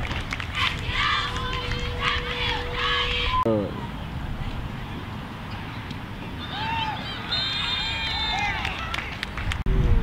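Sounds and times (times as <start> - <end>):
players and spectators shouting: 0.6 - 3.9, 6.4 - 8.9
wind rumble on microphone: 8.5 - 10.0.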